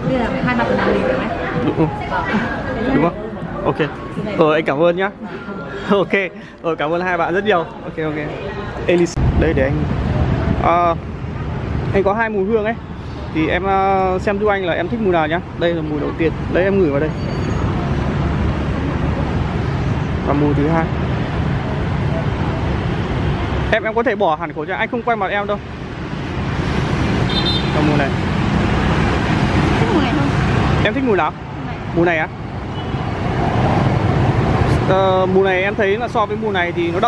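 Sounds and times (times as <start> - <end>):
city street traffic rumble: 0.0 - 37.0
scooters and cars passing: 0.0 - 37.0.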